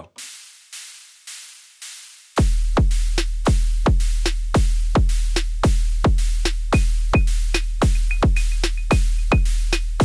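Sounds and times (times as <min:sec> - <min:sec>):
drum machine hi-hat hits: 0:00.0 - 0:10.0.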